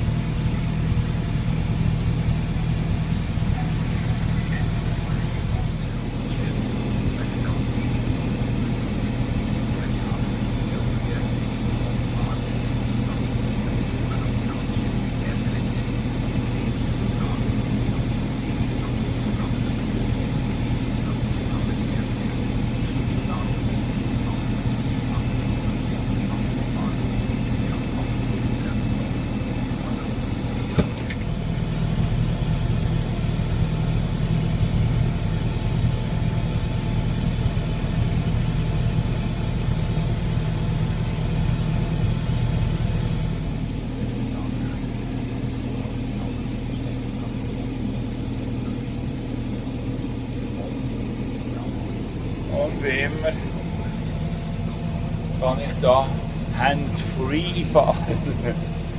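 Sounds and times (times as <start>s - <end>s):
tractor engine running: 0.0s - 58.9s.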